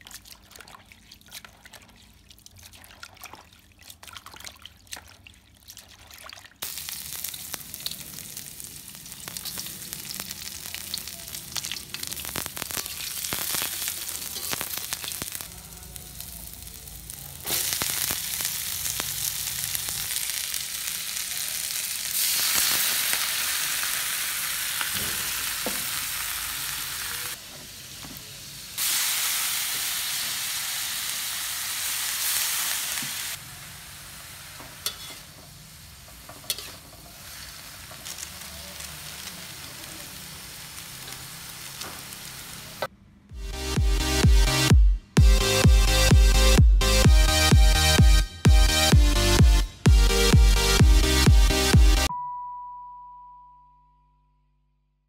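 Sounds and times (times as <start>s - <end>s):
food sizzling in hot oil: 6.6s - 42.9s
spatula scraping pan: 34.8s - 35.5s, 36.2s - 37.1s.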